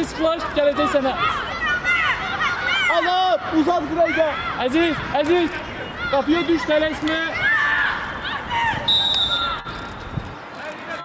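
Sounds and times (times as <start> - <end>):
voices of coaches and spectators: 0.0 - 11.0
referee's whistle blast: 8.9 - 9.6.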